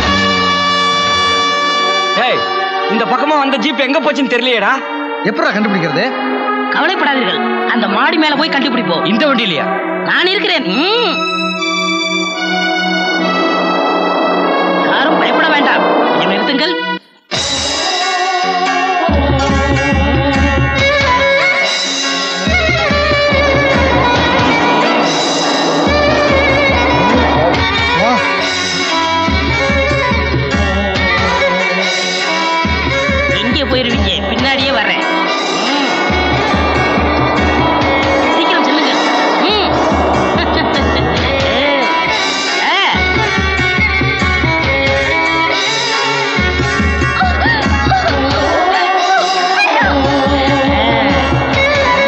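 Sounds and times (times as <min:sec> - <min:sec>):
pulsing bass note: 0:00.0 - 0:02.1, 0:22.8 - 0:28.3, 0:35.0 - 0:42.2
organ-like film score chords: 0:00.0 - 0:04.0, 0:11.2 - 0:17.0, 0:21.7 - 0:31.1, 0:32.6 - 0:48.6
wavering cries: 0:22.6 - 0:28.4.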